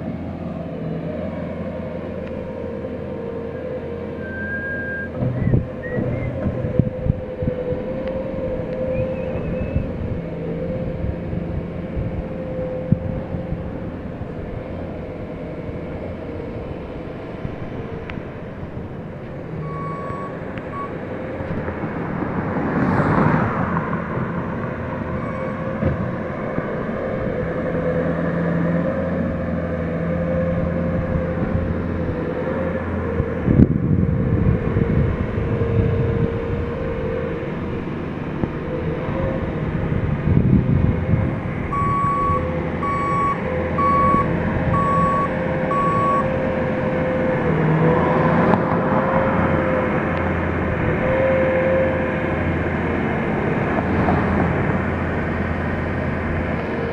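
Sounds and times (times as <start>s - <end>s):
construction machinery engines: 0.0s - 56.9s
backup alarm beeping: 19.6s - 20.9s, 41.7s - 46.3s.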